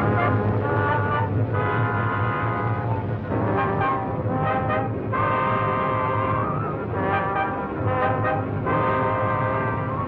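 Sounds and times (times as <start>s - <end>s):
old film title music chords: 0.0s - 10.0s.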